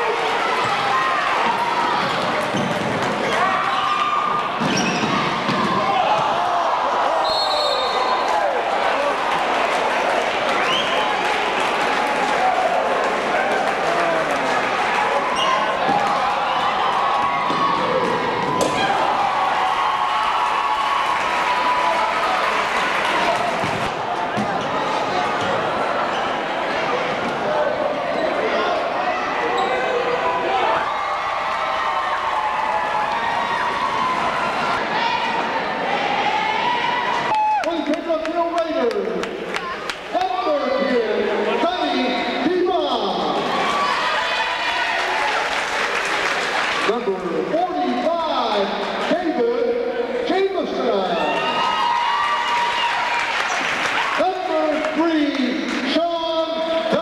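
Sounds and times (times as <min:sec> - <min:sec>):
crowd talking and calling out: 0:00.0 - 0:57.0.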